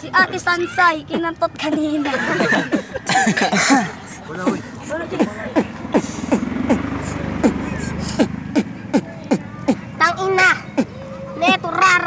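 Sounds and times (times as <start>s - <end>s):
beatboxing: 3.1s - 12.0s.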